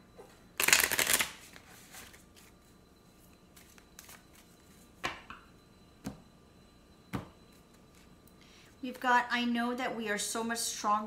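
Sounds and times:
deck of cards riffle shuffled: 0.6 - 2.5.

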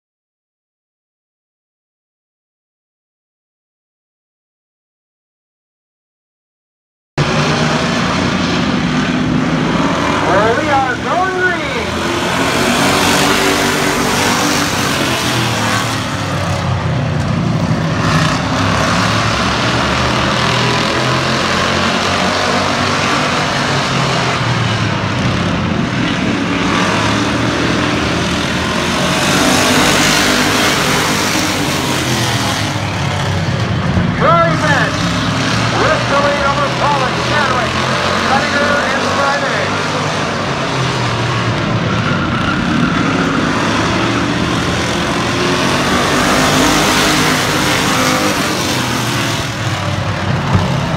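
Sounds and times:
race car engines droning: 7.2 - 50.9.

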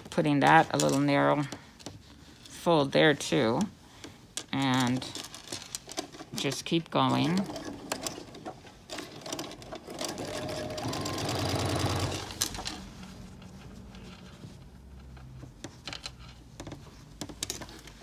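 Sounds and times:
electric sewing machine stitching: 9.3 - 12.5.

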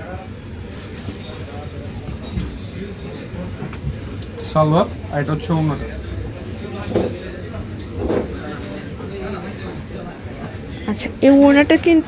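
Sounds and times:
low rumble: 5.0 - 9.6.

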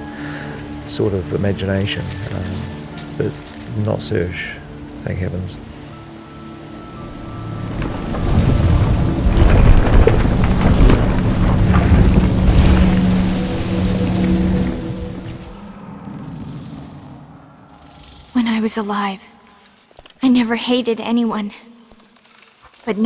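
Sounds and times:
wood crumbling rumble and crackling: 7.0 - 15.7.

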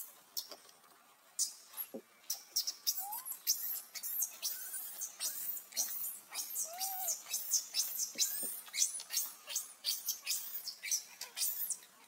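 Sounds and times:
baby monkey squealing: 1.4 - 11.8.

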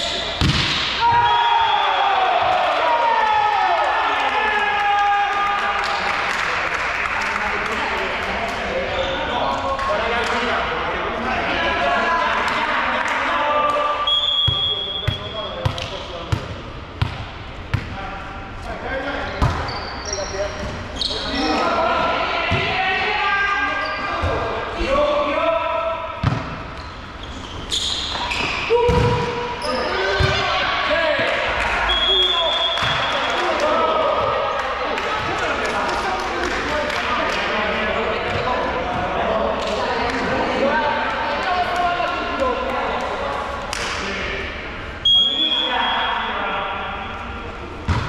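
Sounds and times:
players shouting: 0.0 - 6.2, 28.5 - 35.9
sharp volleyball hits: 0.1 - 1.4, 19.4 - 19.7, 26.2 - 26.8, 28.0 - 30.5, 32.6 - 33.3
high whistle blasts: 1.1 - 2.0, 14.0 - 15.3, 31.9 - 33.3, 45.0 - 46.2.

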